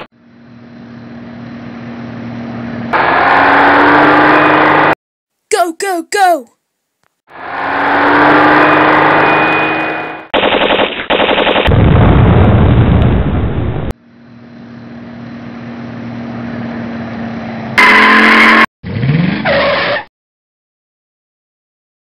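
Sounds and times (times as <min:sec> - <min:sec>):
engine running: 0:00.0 - 0:05.0, 0:07.3 - 0:10.3, 0:14.0 - 0:18.7
machine-gun fire: 0:10.3 - 0:12.2
loud heavy blast: 0:11.7 - 0:13.9.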